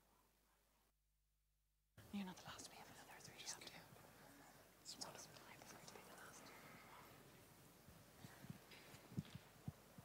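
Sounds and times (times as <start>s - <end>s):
faint quiet voices: 2.0s - 7.5s.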